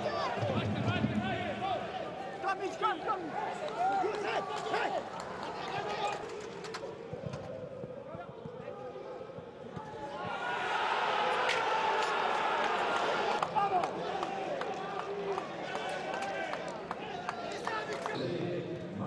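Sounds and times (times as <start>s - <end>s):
crowd cheering: 0.0s - 8.2s, 9.7s - 18.2s
players shouting: 9.7s - 17.7s.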